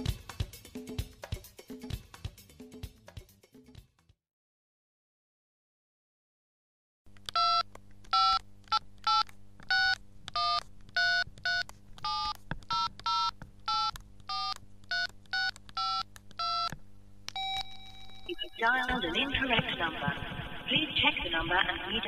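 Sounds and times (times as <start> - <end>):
low steady hum: 7.1 - 22.0
telephone keypad beeps: 7.3 - 16.7, 17.4 - 19.2
steady telephone tone: 17.4 - 19.4.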